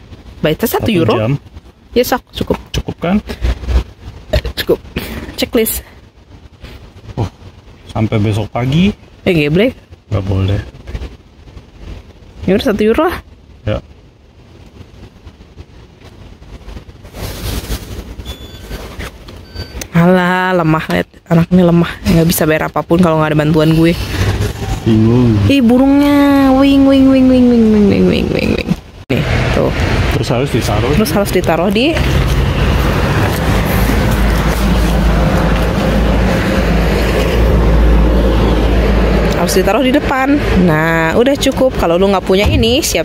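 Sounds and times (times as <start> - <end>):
vehicle engine running: 0.0 - 1.4, 29.2 - 43.0
road and traffic noise: 0.0 - 43.0
faint short electronic beep: 18.2 - 18.8
passing vehicle rushing: 42.4 - 43.0.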